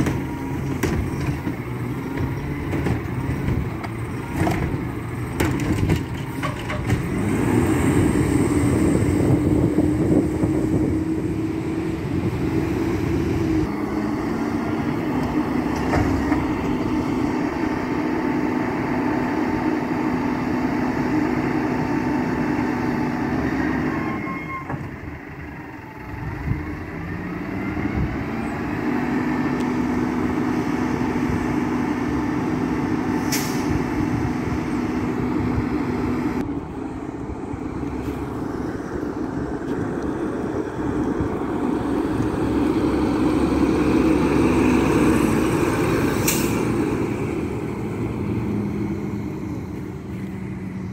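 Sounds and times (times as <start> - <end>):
garbage truck engine droning: 0.0 - 50.9
air brake hiss: 33.2 - 33.8.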